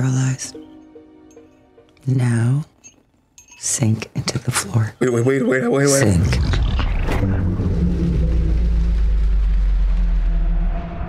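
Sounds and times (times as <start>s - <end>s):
deep rumbling bass drone: 6.1s - 11.0s.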